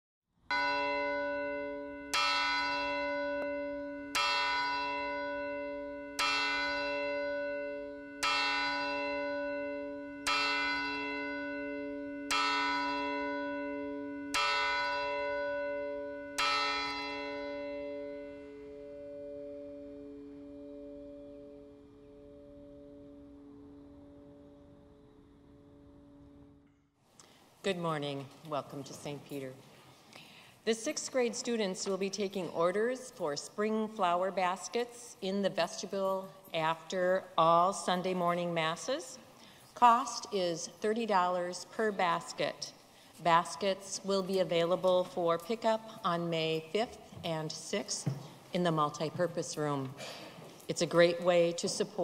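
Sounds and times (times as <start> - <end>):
church bell tolling: 0.5 - 26.6.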